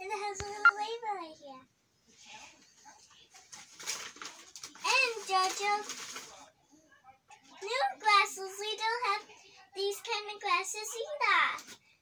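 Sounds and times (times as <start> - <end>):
child's voice: 0.0 - 1.7, 7.6 - 11.8
tissue paper rustling: 3.4 - 6.4.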